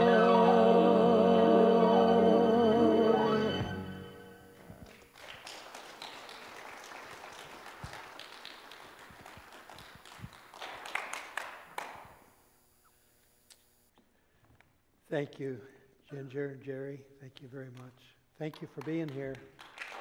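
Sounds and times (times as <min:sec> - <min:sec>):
person singing: 0:00.0 - 0:04.1
congregation clapping: 0:04.6 - 0:12.3, 0:17.7 - 0:20.0.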